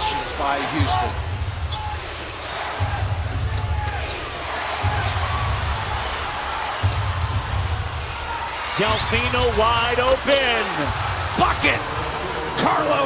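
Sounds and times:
arena crowd noise: 0:00.0 - 0:13.0
low regular thumping: 0:00.8 - 0:12.0.

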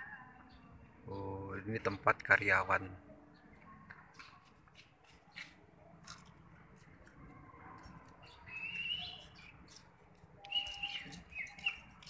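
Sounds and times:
birds chirping: 0:00.0 - 0:06.3, 0:07.7 - 0:12.0.

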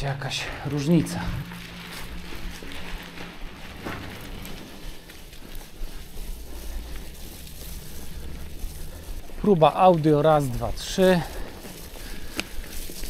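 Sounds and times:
bicycle tyres rolling on gravel: 0:00.0 - 0:13.0.

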